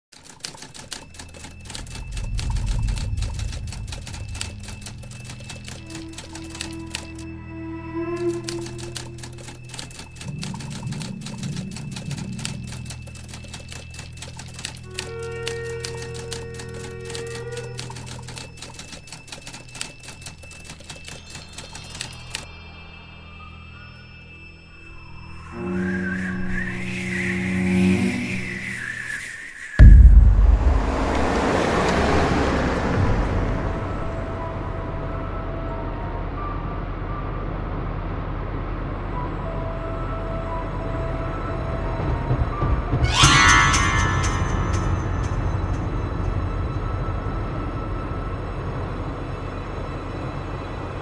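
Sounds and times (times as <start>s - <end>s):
low rumbling drone: 1.6s - 13.6s, 29.8s - 51.0s.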